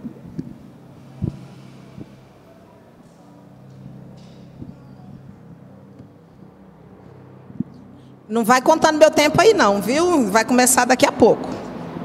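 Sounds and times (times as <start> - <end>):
steady low hum: 0.0 - 12.0
microphone handling bumps: 7.4 - 7.9.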